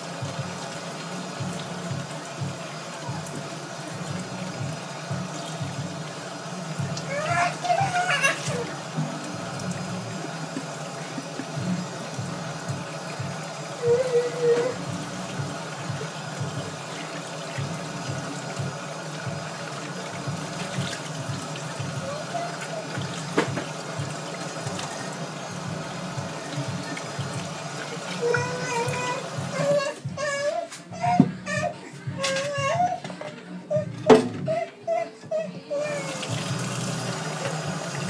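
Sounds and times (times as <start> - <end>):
faucet running into metal sink: 0.0 - 31.3, 35.7 - 38.0
background music: 0.0 - 38.0.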